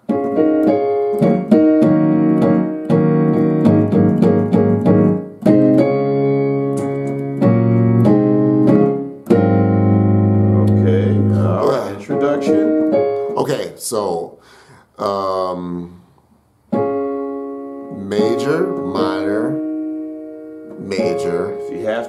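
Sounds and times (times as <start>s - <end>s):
digital piano gospel chords: 0.0s - 16.0s, 16.6s - 22.0s.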